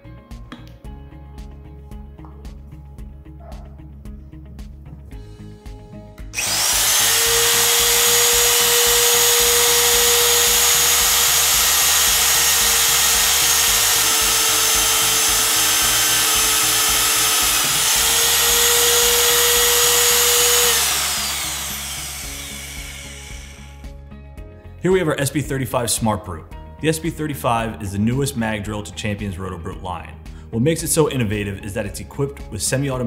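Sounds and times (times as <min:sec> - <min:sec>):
drill press motor whining: 0:06.4 - 0:23.8.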